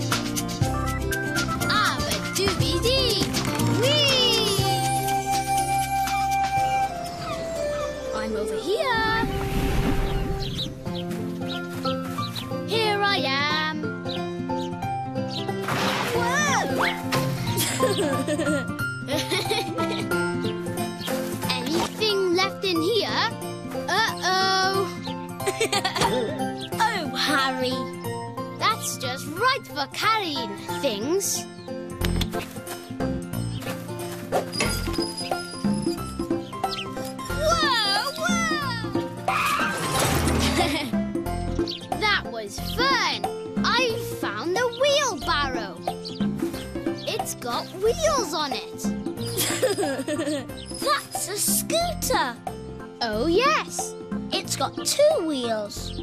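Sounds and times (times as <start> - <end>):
children's music: 0.0 - 56.0
rushing whoosh: 9.0 - 10.9.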